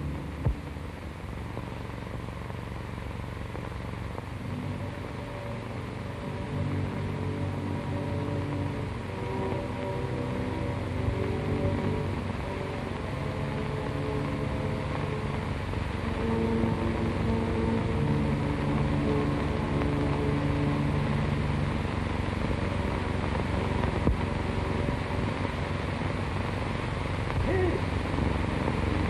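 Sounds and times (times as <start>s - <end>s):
film score with held notes: 0.0s - 29.0s
film soundtrack hiss and hum: 0.0s - 29.0s.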